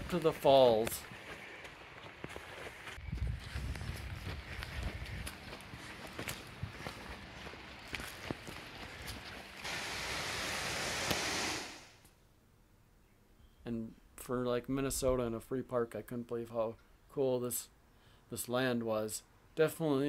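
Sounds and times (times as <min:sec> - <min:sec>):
footsteps on dirt and leaves: 0:00.0 - 0:10.0
wind on microphone: 0:03.0 - 0:05.9
steady rushing hiss: 0:08.4 - 0:12.0.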